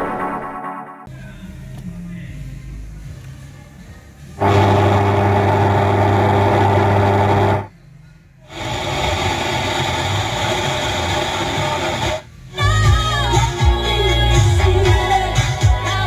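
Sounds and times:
radio electrical buzz: 4.4 - 7.7, 8.5 - 12.3
radio static hissing: 8.5 - 12.3.

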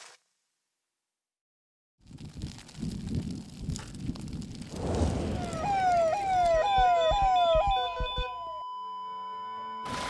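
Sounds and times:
ambulance siren wailing: 5.4 - 8.8.

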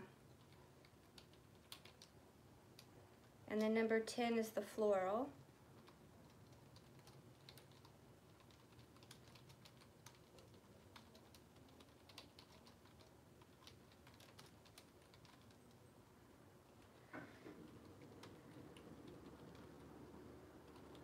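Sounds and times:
keyboard typing clicks: 5.9 - 15.8.

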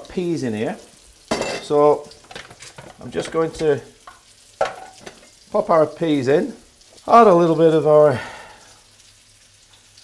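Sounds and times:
fish cakes sizzling in oil: 0.0 - 10.0
person speaking: 1.6 - 2.1, 3.0 - 4.0, 5.5 - 8.3.

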